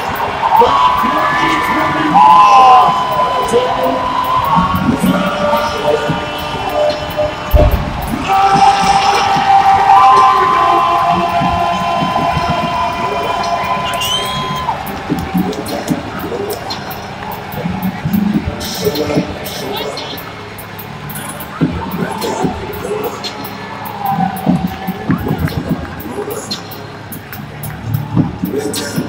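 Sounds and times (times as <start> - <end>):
music over public address: 0.0 - 29.0
stadium crowd cheering: 0.0 - 29.0
low thump: 7.5 - 8.3.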